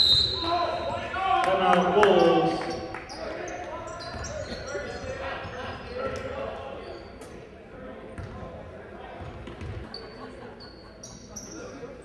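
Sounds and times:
voices in echoing hall: 0.0 - 12.0
sneakers squeaking on hardwood: 2.6 - 6.2, 9.2 - 11.6
basketball bouncing on floor: 8.2 - 8.4, 9.2 - 9.8.

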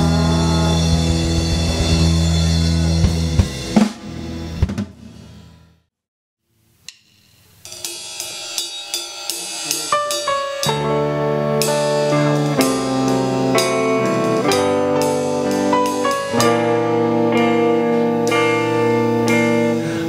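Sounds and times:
electric guitar: 0.0 - 4.8, 9.9 - 20.0
drum kit: 0.0 - 5.7, 6.9 - 20.0
bass guitar: 0.0 - 5.8, 10.0 - 20.0
hi-hat and cymbal hits: 6.9 - 10.8.

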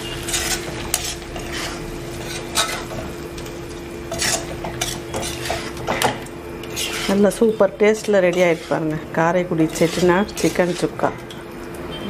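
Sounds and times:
spatula scraping pan: 0.0 - 11.4
light sizzle: 0.0 - 12.0
steady hum: 0.0 - 12.0.

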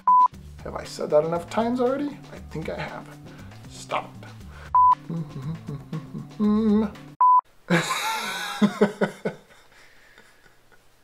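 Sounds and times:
man laughing: 5.1 - 7.0, 7.7 - 10.9.

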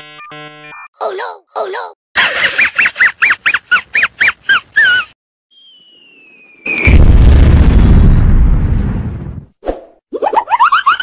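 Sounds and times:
squeaky cartoon snickering laugh: 1.0 - 5.1, 10.2 - 11.0
falling whistle: 5.5 - 7.0
loud explosion: 6.7 - 9.5.

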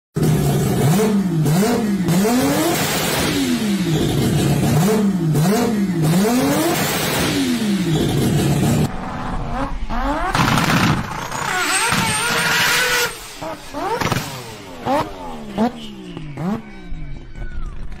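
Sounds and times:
rotary engine revving: 0.2 - 17.0.

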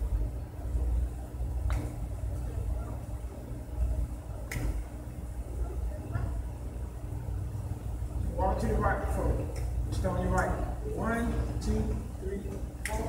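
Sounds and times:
low room rumble: 0.0 - 13.0
faint voices: 0.1 - 13.0.

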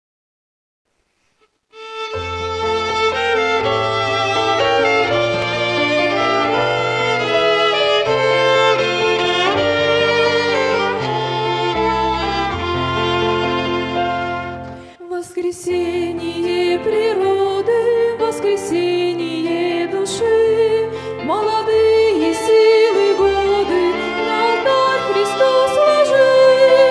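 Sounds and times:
violins and piano playing hymn: 1.8 - 15.0, 15.6 - 26.9.

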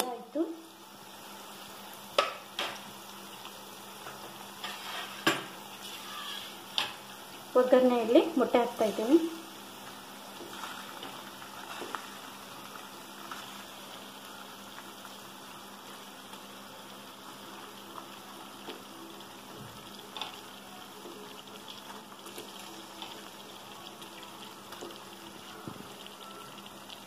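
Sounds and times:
food bubbling in oil and water: 0.0 - 27.0
eggs knocking in pan: 2.1 - 2.8.

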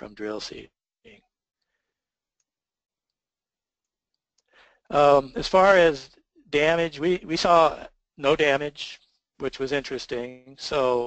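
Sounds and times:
person speaking: 0.0 - 0.6, 4.9 - 11.0.

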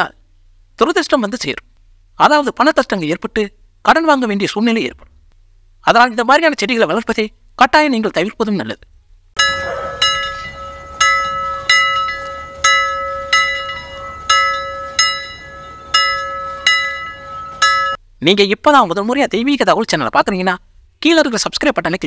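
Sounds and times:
bell strikes: 9.4 - 18.0
steady held tone: 9.4 - 18.0.

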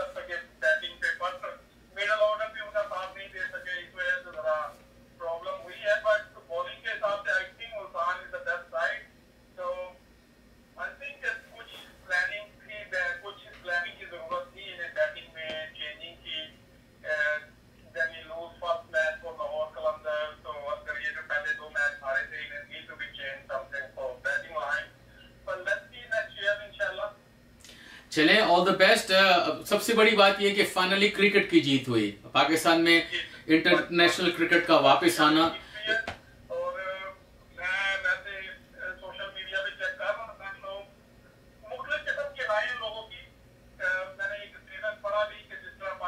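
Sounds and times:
man talking: 0.0 - 10.0, 10.8 - 24.9, 25.5 - 27.2, 28.1 - 40.9, 41.6 - 46.0.

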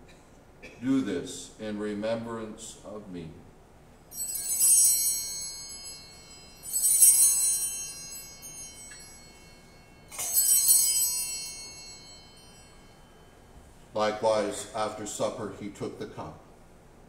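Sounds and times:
altar bells ringing: 4.0 - 14.4.

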